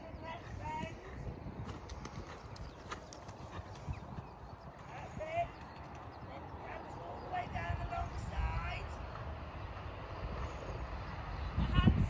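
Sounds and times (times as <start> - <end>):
horse hoofbeats cantering: 0.3 - 11.1.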